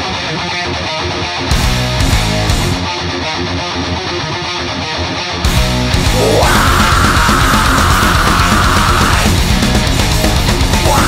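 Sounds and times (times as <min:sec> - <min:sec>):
heavy metal electric guitar riff: 0:00.0 - 0:11.0.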